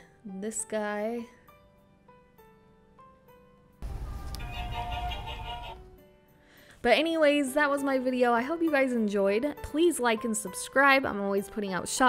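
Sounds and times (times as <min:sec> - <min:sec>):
toy sound module tune: 0:04.2 - 0:05.8.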